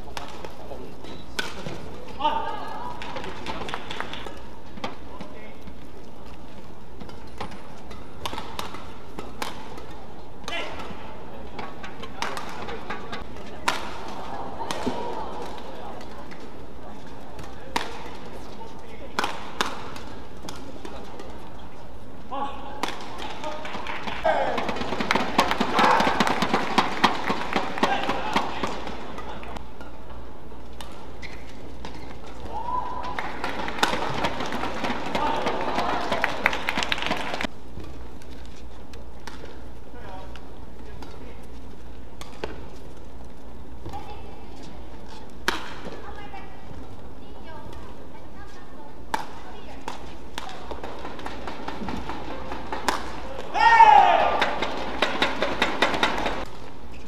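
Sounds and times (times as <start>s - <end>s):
racket hitting shuttlecock: 1.2s - 5.3s, 7.0s - 16.5s, 17.3s - 18.4s, 19.0s - 21.5s, 22.7s - 39.6s, 42.2s - 42.8s, 45.1s - 46.2s, 49.0s - 56.7s
crowd cheering and shouting: 32.4s - 33.4s, 35.0s - 37.3s, 53.5s - 54.6s.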